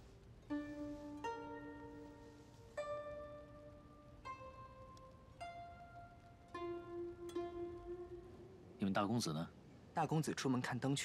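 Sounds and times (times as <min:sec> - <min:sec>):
plucked string notes: 0:00.0 - 0:09.3.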